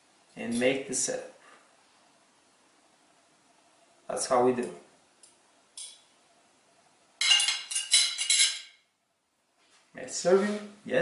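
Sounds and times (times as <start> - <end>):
metal fork and spoon clinking: 7.2 - 8.7.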